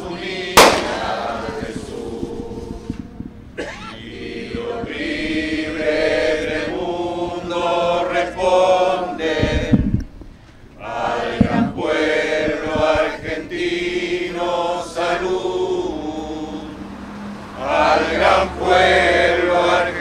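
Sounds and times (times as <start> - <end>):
group of people singing: 0.0 - 10.1, 10.8 - 20.0
sharp crack: 0.6 - 1.4.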